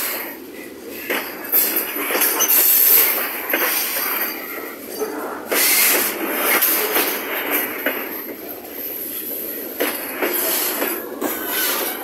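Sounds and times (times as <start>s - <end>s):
freight train wheels on rails: 0.0s - 12.0s
train knocks: 1.0s - 4.8s, 5.4s - 12.0s.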